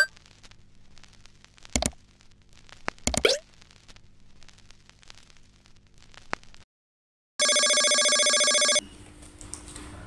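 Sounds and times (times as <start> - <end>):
pop sound effects: 3.1 - 3.4.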